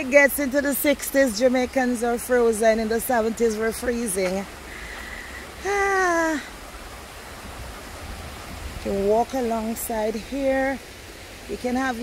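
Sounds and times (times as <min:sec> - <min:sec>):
stream rushing over rocks: 0:00.0 - 0:12.0.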